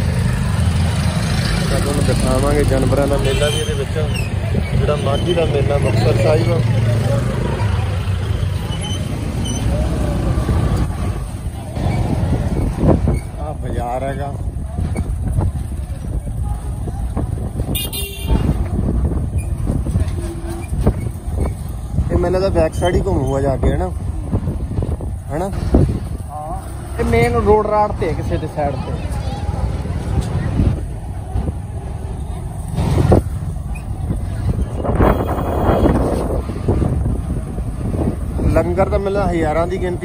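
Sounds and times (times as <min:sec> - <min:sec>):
motorcycle and street traffic rumble: 0:00.0 - 0:40.0.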